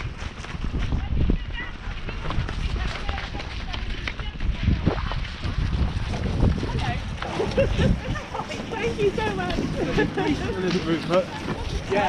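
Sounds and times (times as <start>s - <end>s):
horse hoofbeats on grass: 0.0s - 12.0s
wind rumble on microphone: 0.0s - 12.0s.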